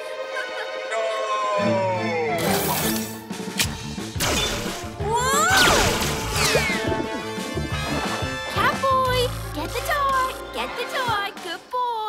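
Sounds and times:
music: 0.0s - 12.0s
cartoon crash and bangs: 4.2s - 4.8s.

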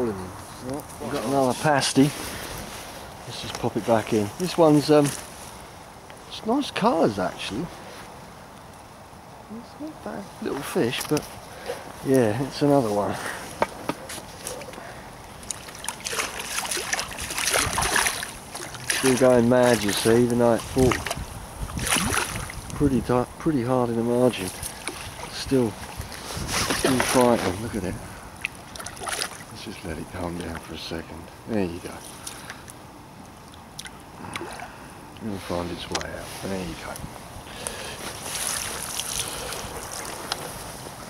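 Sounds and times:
low wind noise: 0.0s - 41.0s
fish splashing and thrashing in water: 15.4s - 20.0s, 20.7s - 22.7s, 24.5s - 27.4s, 28.4s - 29.5s, 38.1s - 40.2s.

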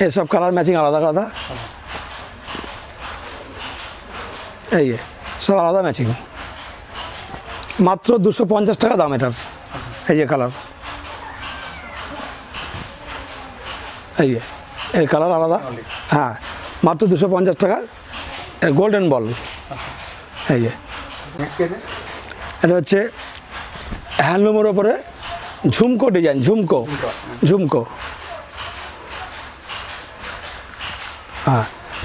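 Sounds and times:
faint voices: 0.0s - 32.0s.

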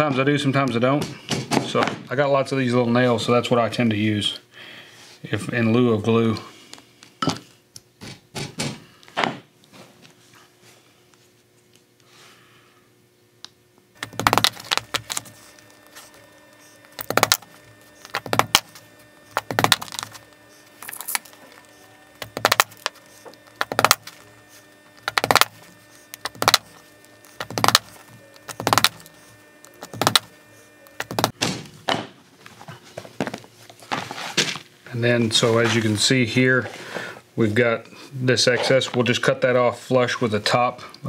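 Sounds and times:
small hammer tapping nails: 22.2s - 22.9s, 23.6s - 24.1s.

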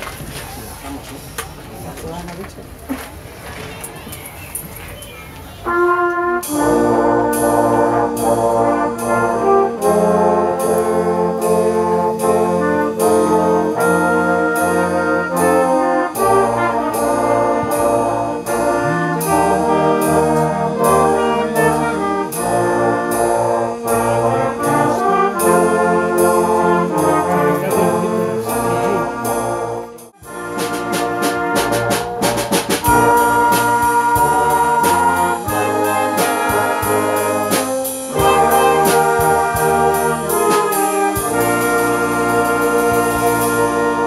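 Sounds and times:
wind band playing: 5.6s - 44.0s.

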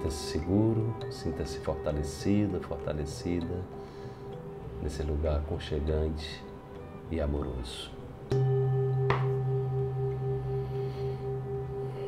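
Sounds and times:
singing bowl ringing: 8.4s - 12.0s.

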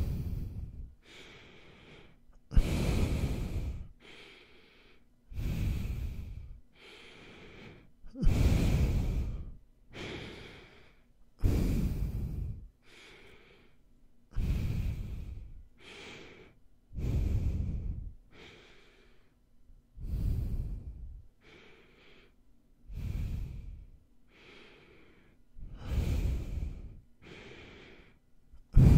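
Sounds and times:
nasal breathing into microphone: 0.0s - 13.8s, 14.4s - 19.3s, 20.0s - 28.9s.

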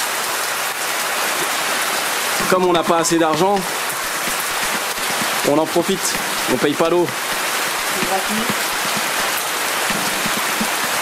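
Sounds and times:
heavy rain falling: 0.0s - 11.0s.

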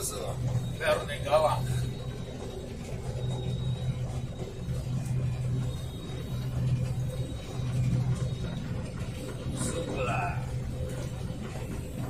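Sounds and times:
combine harvester engine drone: 0.0s - 12.0s.

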